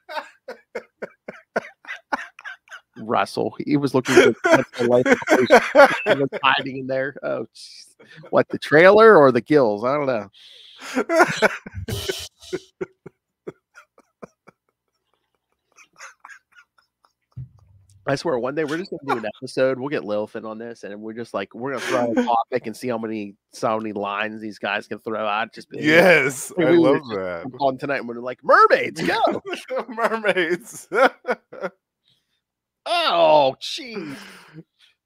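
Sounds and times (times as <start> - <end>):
man laughing: 0.0 - 3.2, 3.9 - 7.1, 8.0 - 8.6, 10.8 - 14.6, 15.7 - 16.7, 18.3 - 19.5, 21.7 - 22.5, 25.7 - 27.6, 28.6 - 31.7.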